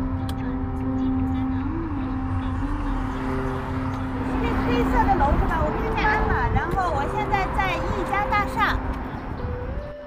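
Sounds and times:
vehicle road rumble: 0.0s - 10.0s.

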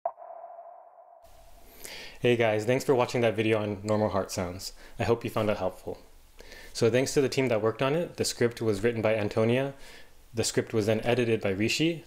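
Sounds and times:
faint steady hiss: 1.3s - 12.0s.

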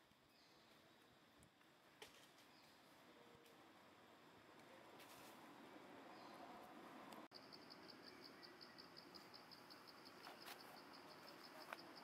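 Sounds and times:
insect chirping: 7.3s - 12.0s.

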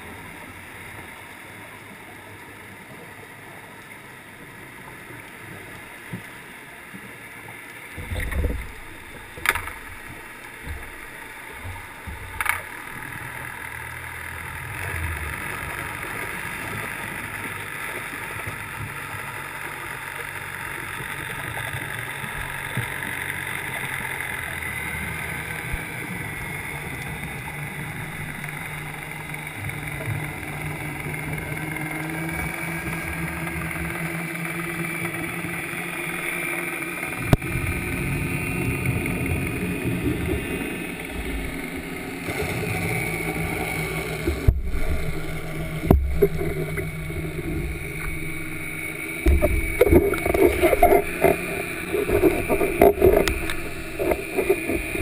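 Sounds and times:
muffled underwater drone: 0.0s - 55.0s.

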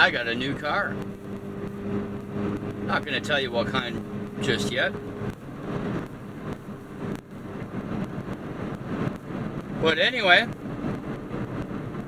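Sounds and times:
car engine drone: 0.0s - 12.0s
tyre and road noise: 0.0s - 12.0s.

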